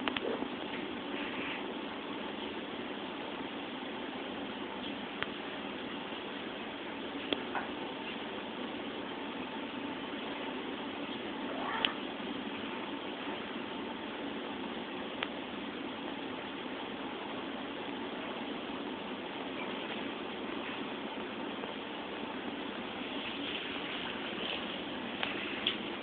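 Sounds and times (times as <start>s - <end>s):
steady hiss: 0.0s - 26.0s.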